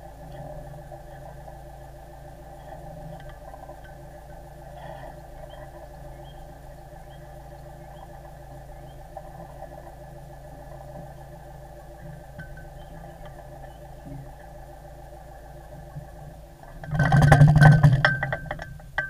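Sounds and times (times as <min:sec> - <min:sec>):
boat engine humming: 0:00.0 - 0:19.0.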